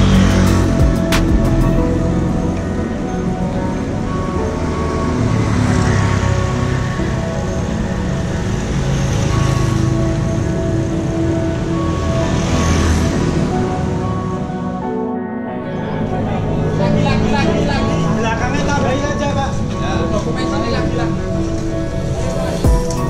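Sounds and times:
music with long held notes: 0:00.0 - 0:23.0
wind and road noise: 0:00.0 - 0:23.0.

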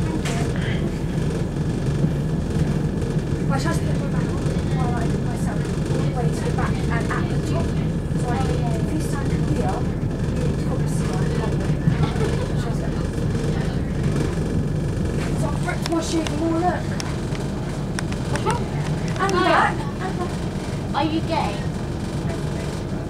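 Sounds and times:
train running at speed: 0:00.0 - 0:23.0.

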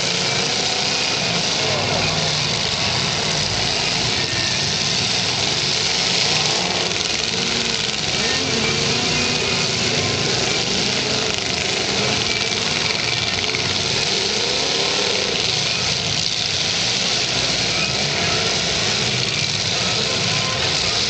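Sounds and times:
car engines running: 0:00.0 - 0:21.0
engines revving: 0:00.0 - 0:21.0.

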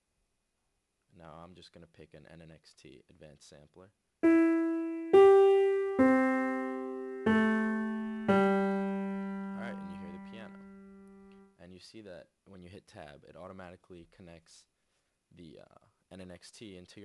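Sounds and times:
piano notes ringing: 0:04.2 - 0:11.4.

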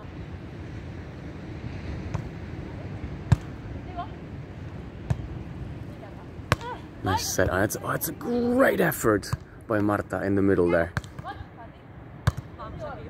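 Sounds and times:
volleyball smacks: 0:06.5 - 0:06.8, 0:12.2 - 0:12.5.

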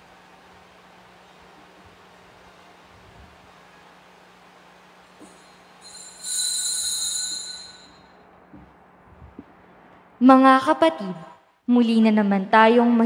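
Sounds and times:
faint low hum: 0:00.0 - 0:13.0
shrill high ringing tones: 0:05.0 - 0:08.4.

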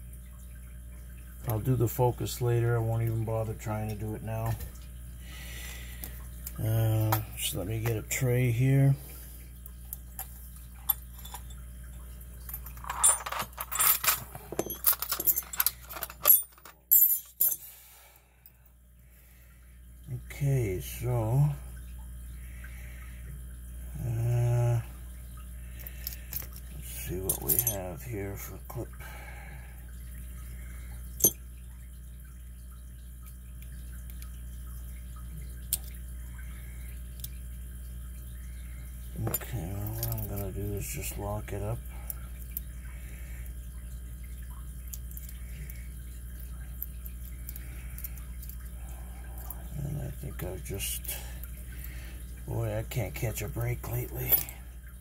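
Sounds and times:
metallic clicks of lock parts: 0:12.6 - 0:17.6, 0:39.2 - 0:40.4.

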